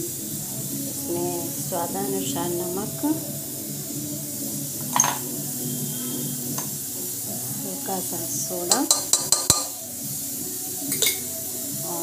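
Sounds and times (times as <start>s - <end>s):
steady background hiss: 0.0s - 12.0s
clink against steel bowl: 10.9s - 11.3s.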